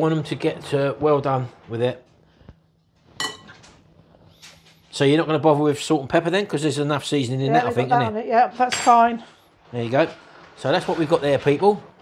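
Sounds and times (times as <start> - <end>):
metal spoon clinking glass bowl: 3.2 - 3.6.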